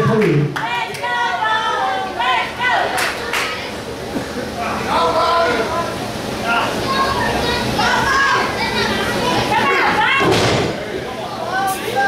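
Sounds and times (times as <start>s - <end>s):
spectators shouting: 0.6s - 3.9s, 4.6s - 12.0s.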